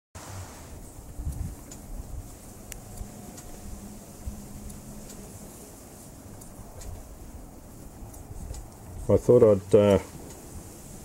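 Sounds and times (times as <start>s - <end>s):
wind rumble on microphone: 0.2s - 11.0s
faint clicks: 1.2s - 5.3s, 6.2s - 9.0s.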